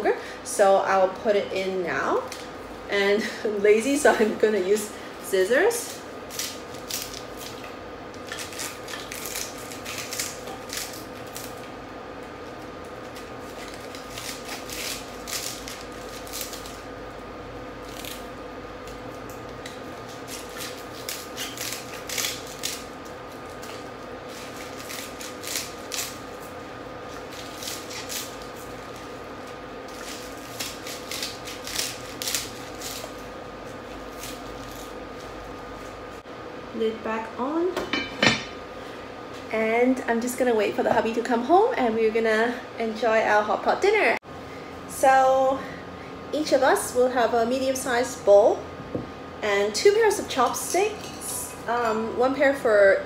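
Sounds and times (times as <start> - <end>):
scissors snipping cabbage leaves: 8.2 - 11.6, 13.4 - 16.8, 19.3 - 22.9, 23.5 - 26.2, 27.2 - 28.4, 29.9 - 33.2, 34.0 - 34.9.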